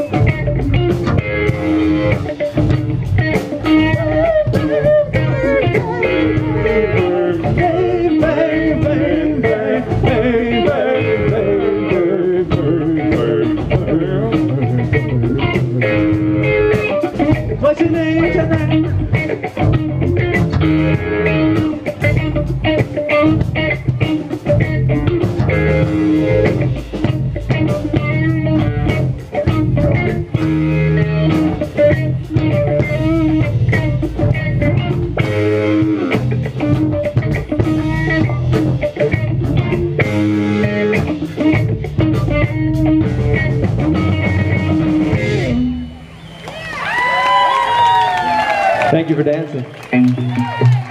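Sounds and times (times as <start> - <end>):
drum kit steady beat: 0.0 - 48.9
electric guitars: 0.0 - 50.9
live rock band playing: 0.0 - 50.9.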